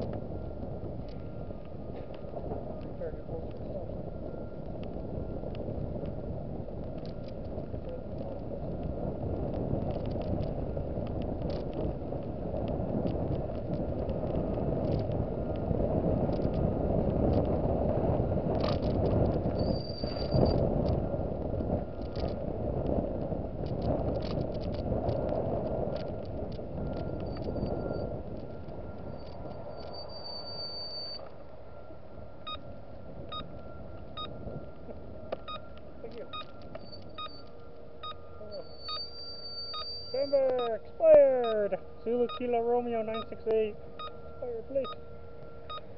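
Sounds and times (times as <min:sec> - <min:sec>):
car road and engine rumble: 0:00.0 - 0:45.9.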